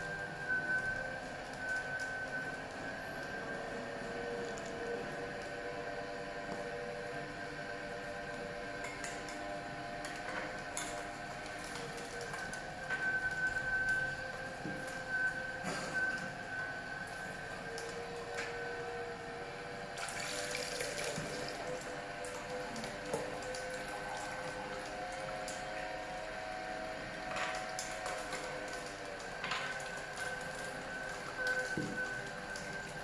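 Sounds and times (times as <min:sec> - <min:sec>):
juicer motor whining: 0:00.0 - 0:33.0.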